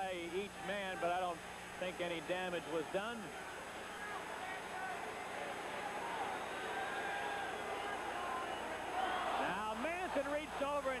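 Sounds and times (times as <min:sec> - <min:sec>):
faint scattered shouts: 0:03.3 - 0:11.0.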